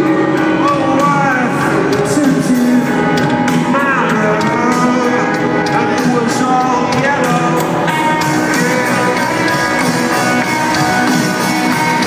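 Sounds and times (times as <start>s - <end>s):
live rock band: 0.0s - 12.0s
steady drums: 0.0s - 12.0s.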